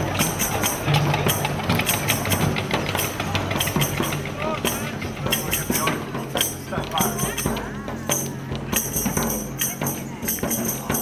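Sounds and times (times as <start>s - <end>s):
hand drum strokes: 0.0s - 11.0s
jingling tambourine: 0.0s - 11.0s.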